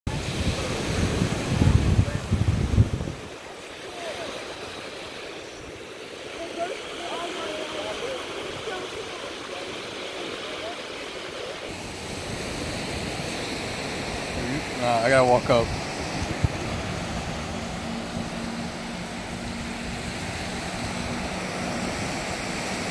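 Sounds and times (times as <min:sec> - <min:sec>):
wind rumbling on microphone: 0:00.1 - 0:03.5, 0:11.7 - 0:22.9
ocean surf breaking: 0:00.1 - 0:22.9.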